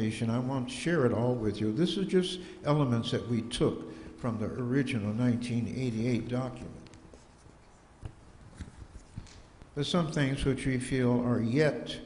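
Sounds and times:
papers rustling on a table: 6.6 - 9.7.

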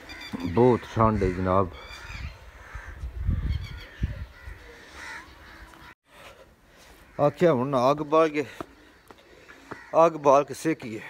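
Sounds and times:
distant bird calls: 0.0 - 11.0.

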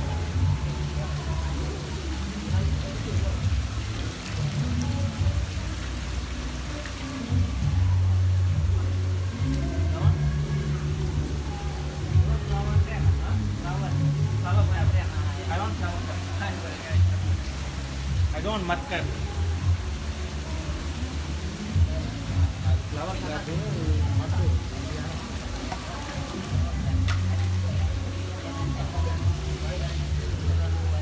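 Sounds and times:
background music with bass line: 0.0 - 31.0
water hissing in tanks: 0.0 - 31.0.

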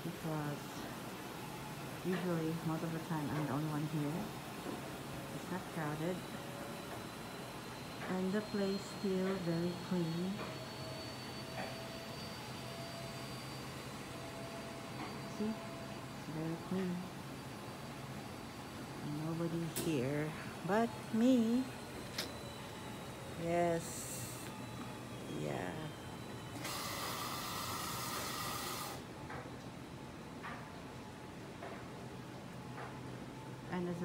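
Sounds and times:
faint high whine: 0.0 - 34.0.

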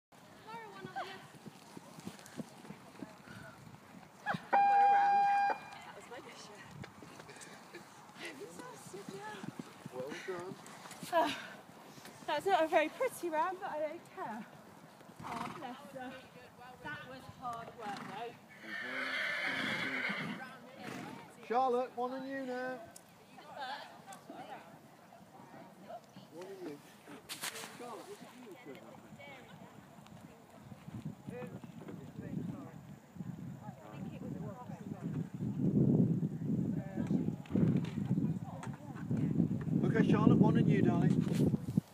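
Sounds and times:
hoofbeats on sand: 0.2 - 4.1
high beep: 4.6 - 5.8.

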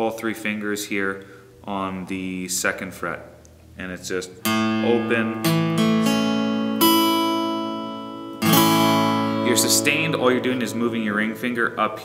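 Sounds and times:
acoustic guitar chord strummed: 4.4 - 12.0.

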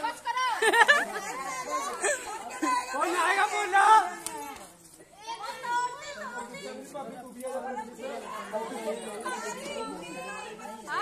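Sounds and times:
women and children talking: 0.0 - 11.0.

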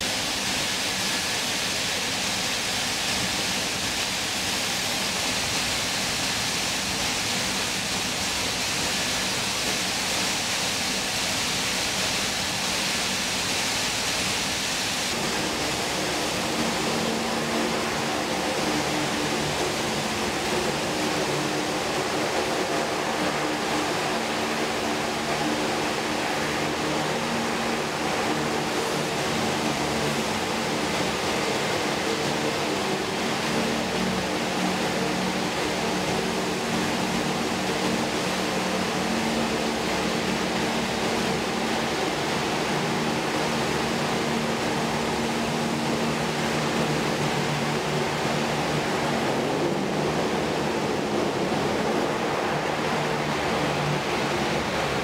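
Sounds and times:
hovercraft running over sea: 0.0 - 55.0
steady low hums: 0.0 - 55.0.

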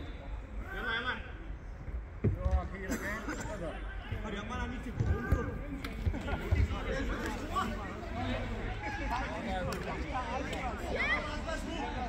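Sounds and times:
men calling and chatting: 0.0 - 12.0.

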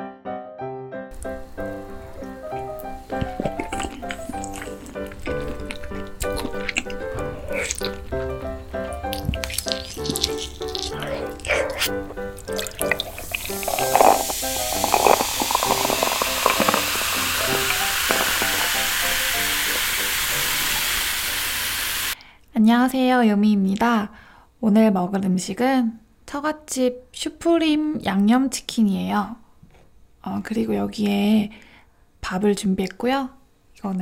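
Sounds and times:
light background music: 1.1 - 21.9
cola fizzing: 1.1 - 22.2
eating clicks: 1.1 - 22.2
cola pouring into a glass mug: 9.4 - 22.2.

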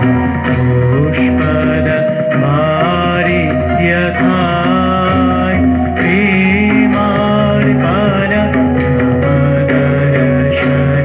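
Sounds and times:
electronic keyboard holding chords: 0.0 - 11.0
man singing a hymn: 0.0 - 11.0.

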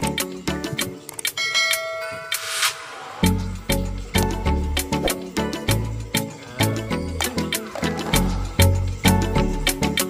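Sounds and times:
background music: 0.0 - 10.0
bell chime: 1.4 - 4.0.

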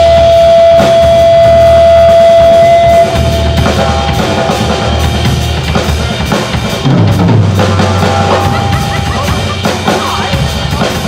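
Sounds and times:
electric guitar sustained note: 0.0 - 5.8, 7.6 - 9.3
bass guitar: 0.0 - 11.0
drums: 0.0 - 11.0.

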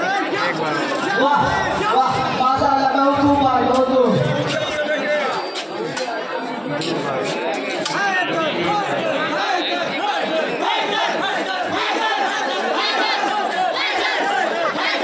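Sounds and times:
crowd of men chattering: 0.0 - 15.0.

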